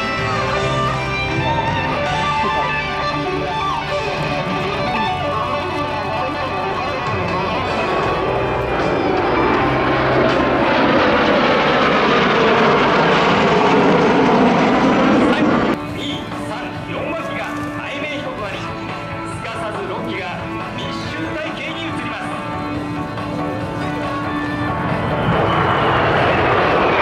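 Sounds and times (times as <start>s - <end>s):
guitar music: 0.0s - 12.7s
jets passing overhead: 0.0s - 27.0s.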